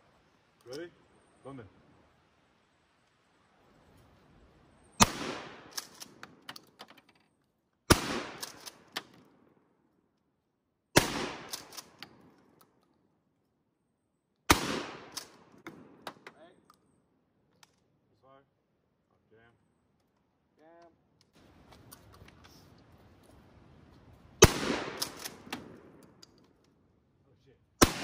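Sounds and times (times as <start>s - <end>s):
shotgun shots with echo: 5.0s - 5.7s, 7.9s - 8.6s, 11.0s - 11.7s, 14.5s - 16.0s, 24.4s - 25.9s, 27.8s - 28.0s
shotgun pump action clicks: 8.4s - 9.2s, 11.4s - 12.9s, 24.9s - 26.8s.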